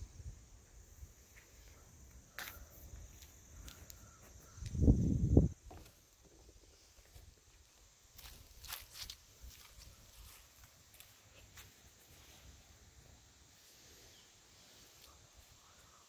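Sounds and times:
footsteps on dirt path: 0:07.0 - 0:11.9.

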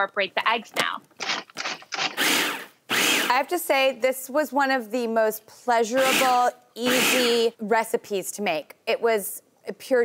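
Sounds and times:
food processor chopping: 0:01.3 - 0:03.3, 0:06.0 - 0:07.2.

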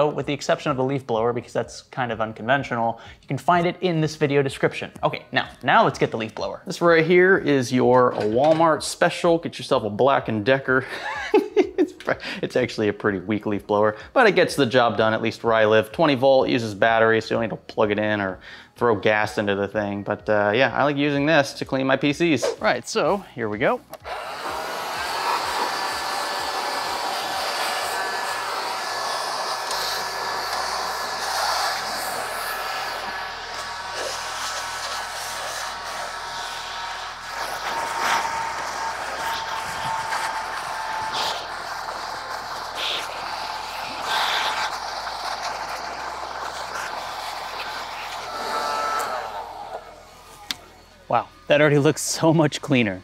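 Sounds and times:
leaf blower rushing air: 0:24.0 - 0:50.7.

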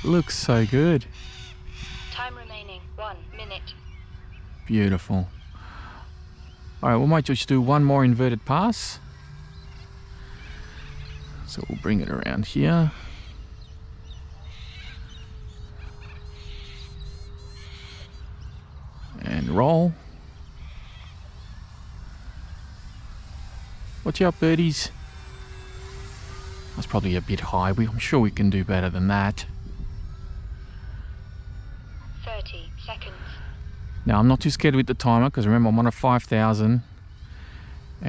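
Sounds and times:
model plane motor humming: 0:00.0 - 0:38.0
small birds chirping: 0:00.0 - 0:38.0
wind rumble on microphone: 0:26.7 - 0:35.5.

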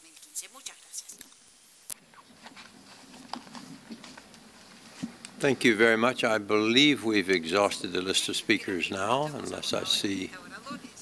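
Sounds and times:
high-pitched electronic whine: 0:00.0 - 0:02.0.

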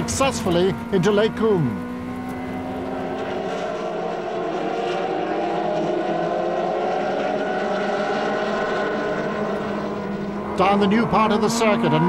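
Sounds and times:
race car engine running hard: 0:00.0 - 0:12.0.

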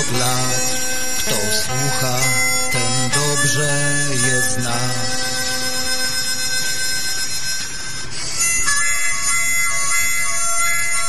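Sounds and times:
reedy wind instrument chord: 0:00.0 - 0:11.0.

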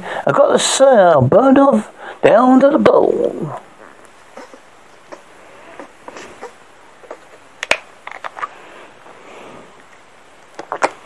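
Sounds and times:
low hiss: 0:00.0 - 0:11.0
small rustles: 0:03.5 - 0:11.0.

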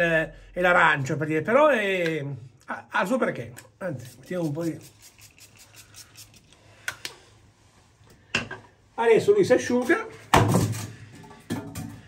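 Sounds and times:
spray atomizer puffing: 0:03.8 - 0:07.2.

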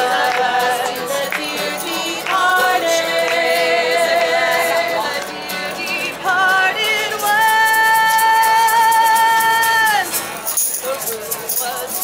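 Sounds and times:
women singing folk song: 0:00.0 - 0:10.2
strummed acoustic guitar: 0:00.0 - 0:12.0
tambourine shaken: 0:07.0 - 0:12.0.

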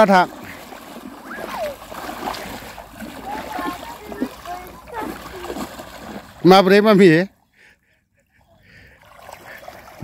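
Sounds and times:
feet splashing in shallow water: 0:00.0 - 0:07.7, 0:08.3 - 0:10.0.

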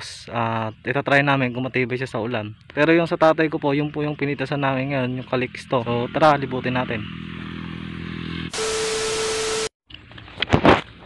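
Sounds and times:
steady mid-pitched beep: 0:08.6 - 0:09.7.

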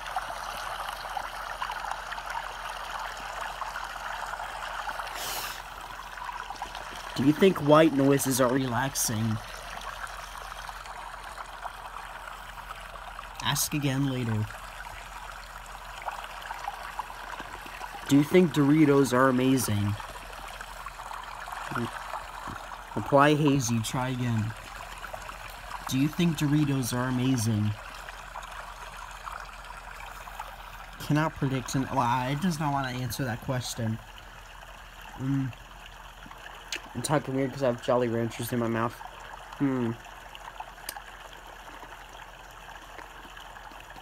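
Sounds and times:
running water rush: 0:00.0 - 0:44.0
short high hiss: 0:05.1 - 0:05.7.

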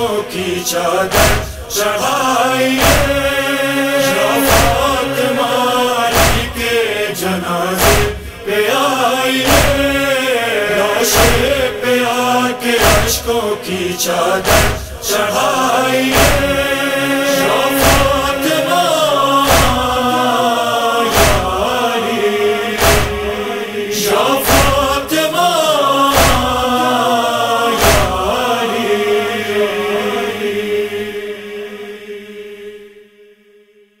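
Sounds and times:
chorus chanting without words: 0:00.0 - 0:34.0
heavy percussive beat: 0:01.1 - 0:01.7, 0:04.5 - 0:04.9, 0:06.2 - 0:06.6, 0:07.8 - 0:08.3, 0:09.5 - 0:09.8, 0:12.8 - 0:13.2, 0:14.5 - 0:15.0, 0:16.1 - 0:16.6, 0:17.8 - 0:18.4, 0:19.5 - 0:20.0, 0:21.1 - 0:21.6, 0:22.8 - 0:23.4, 0:24.5 - 0:25.0, 0:26.2 - 0:26.6, 0:27.8 - 0:28.2.

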